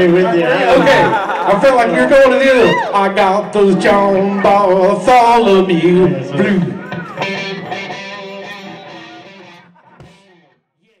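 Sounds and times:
electric guitars ringing: 4.2s - 10.5s.

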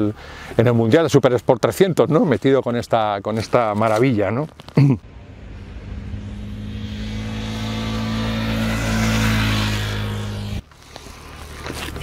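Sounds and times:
motorcycle engine running: 5.1s - 10.6s.

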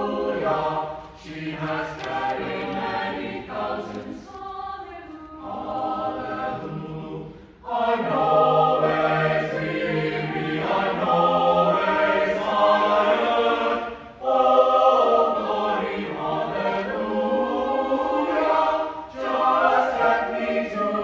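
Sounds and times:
choir singing in harmony: 0.0s - 21.0s.

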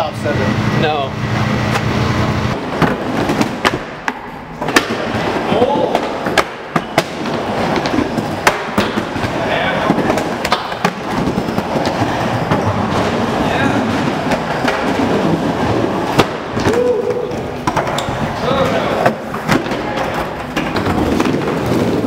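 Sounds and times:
skateboard wheels rolling: 1.6s - 22.0s
skateboard clacking on wood: 5.8s - 9.2s, 9.8s - 12.0s.

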